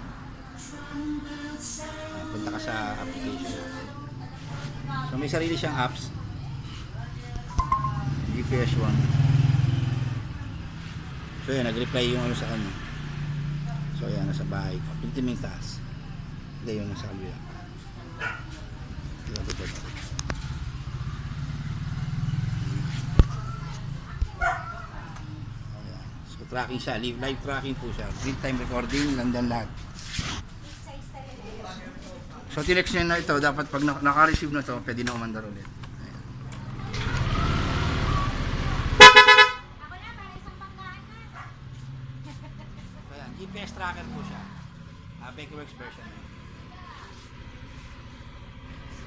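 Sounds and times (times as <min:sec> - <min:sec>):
scooter engine starting: 0:36.0 - 0:39.0
scooter horn toot: 0:39.0 - 0:39.7.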